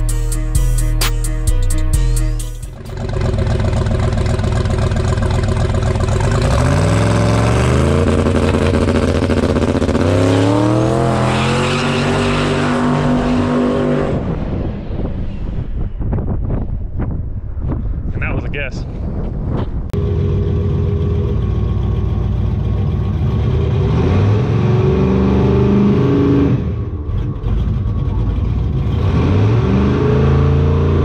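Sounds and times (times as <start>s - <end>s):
truck engine accelerating hard: 2.7s - 15.2s, 19.9s - 31.0s.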